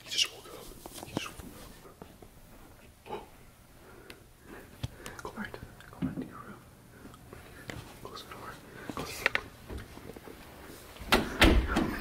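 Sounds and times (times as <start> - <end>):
hushed whispering: 0.0 - 2.0, 5.0 - 6.7, 7.9 - 9.5.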